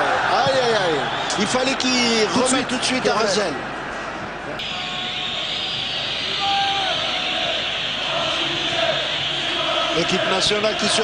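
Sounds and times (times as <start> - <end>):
stadium crowd din: 0.0 - 11.0
crowd chanting: 4.6 - 11.0.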